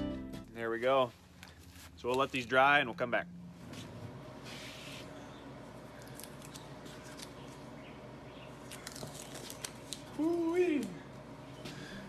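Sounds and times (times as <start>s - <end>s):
masking tape peeling off wood: 8.6s - 10.4s.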